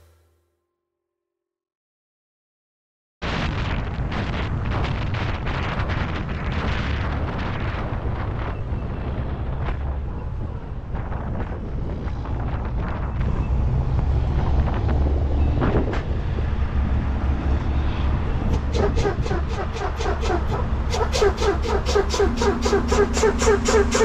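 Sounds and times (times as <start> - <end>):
road and wind noise: 3.2 - 24.0
diesel engine rumble: 5.9 - 24.0.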